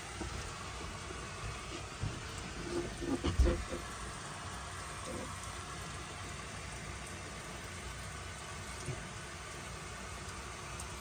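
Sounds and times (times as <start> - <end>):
muffled hose water hissing on roof: 0.0 - 11.0.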